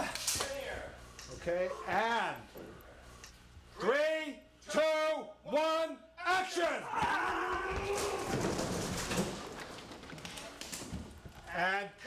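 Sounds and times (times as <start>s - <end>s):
knocks and thuds down stairs: 7.0s - 11.4s
wooden spindles breaking: 7.5s - 11.4s.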